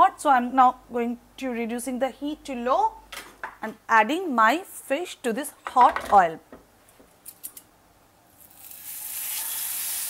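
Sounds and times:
fish sizzling in hot oil: 8.5 - 10.0.

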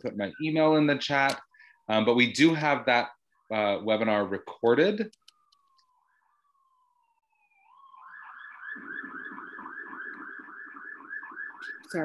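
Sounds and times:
emergency vehicle siren: 0.0 - 12.0.

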